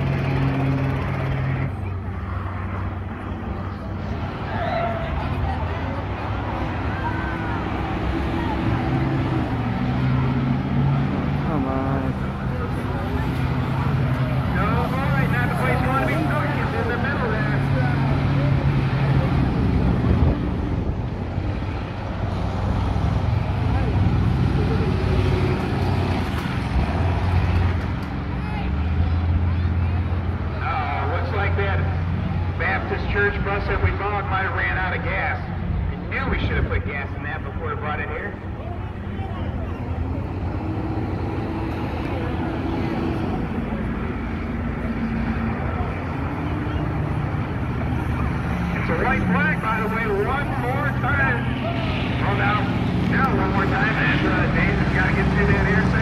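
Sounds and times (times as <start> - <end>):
bus engines droning: 0.0 - 56.0
people talking: 11.4 - 19.5, 36.1 - 40.2, 48.8 - 56.0.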